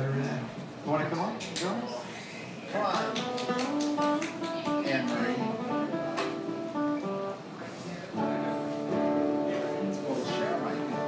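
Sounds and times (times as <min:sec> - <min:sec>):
acoustic guitar chords: 0:03.0 - 0:11.0.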